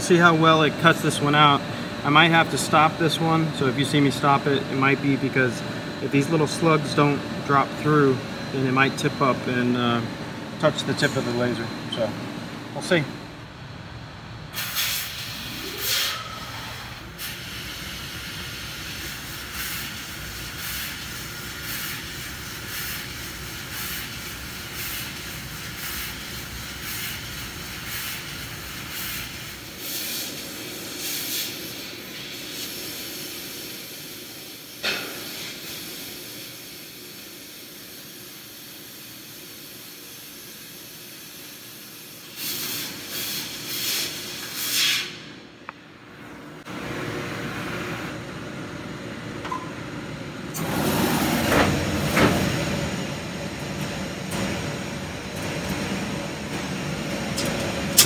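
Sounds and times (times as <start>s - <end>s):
rising machine whine: 0.0s - 13.4s
hiss of assist gas: 14.5s - 45.2s.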